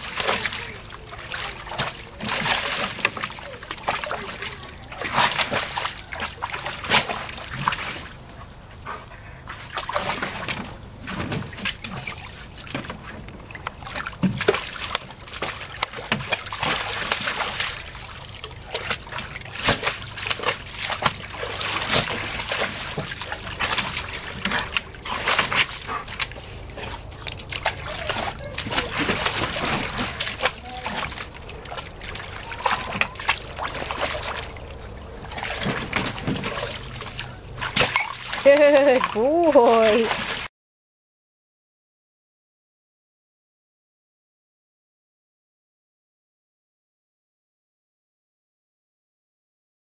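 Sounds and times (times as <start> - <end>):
dog splashing in water: 0.0 - 40.5.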